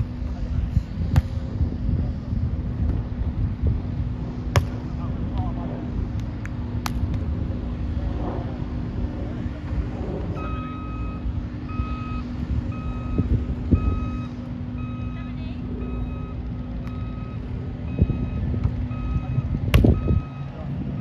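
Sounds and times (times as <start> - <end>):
low engine drone: 0.0 - 21.0
vehicle reversing alarm beeping: 10.3 - 21.0.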